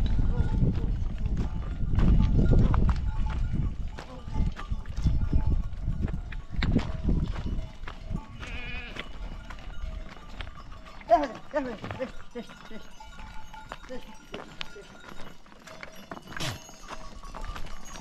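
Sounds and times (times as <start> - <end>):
hooves clattering on rock: 0.0 - 18.0
goats bleating: 8.4 - 9.2.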